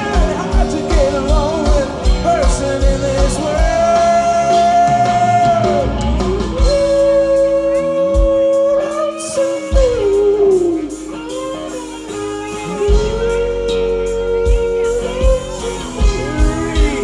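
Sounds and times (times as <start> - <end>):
bass guitar: 0.0 - 17.0
electric guitar: 0.0 - 17.0
person singing: 0.0 - 17.0.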